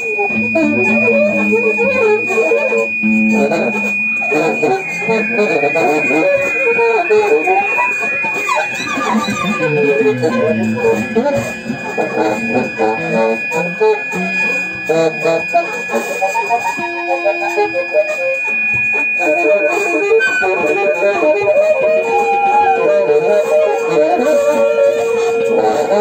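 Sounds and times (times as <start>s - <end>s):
short pitched notes: 0.0s - 15.1s
long held notes: 0.0s - 26.0s
thin steady high tones: 0.0s - 26.0s.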